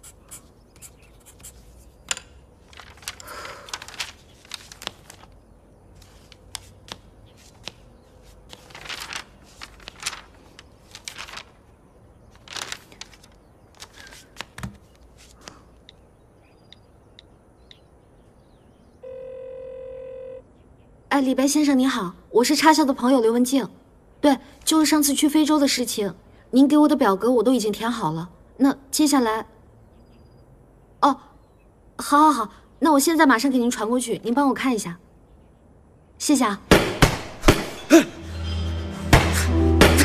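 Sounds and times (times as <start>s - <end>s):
pen scratching on paper: 0.0s - 1.8s
telephone ringback beep: 19.0s - 20.4s.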